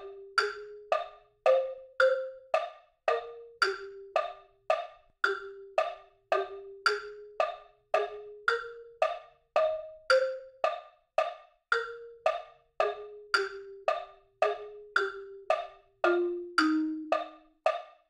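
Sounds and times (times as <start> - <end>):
wood-block metronome clicks: 0.0 - 18.0.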